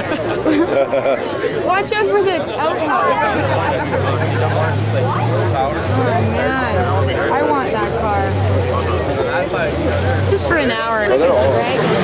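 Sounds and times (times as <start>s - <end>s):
crowd chatter: 0.0s - 12.0s
car engine revving: 3.2s - 12.0s.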